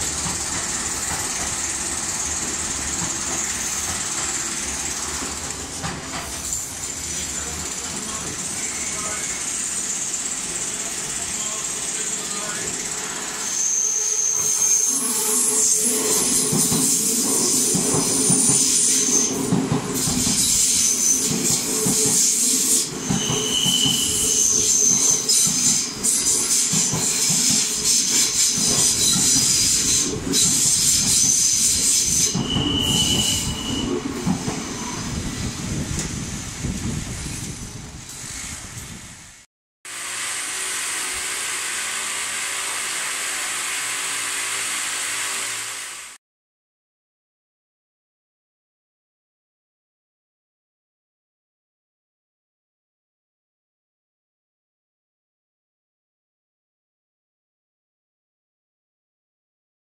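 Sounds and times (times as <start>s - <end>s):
train wheels squealing: 0.4s - 5.5s, 6.1s - 35.2s.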